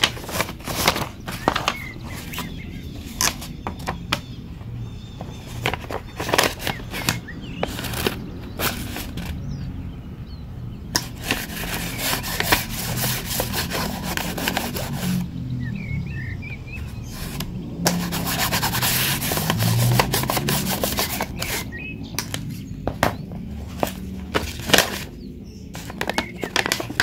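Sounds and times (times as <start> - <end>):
paper rustling and crinkling: 0.0 - 4.2, 5.2 - 9.4, 11.0 - 15.3, 16.8 - 27.0.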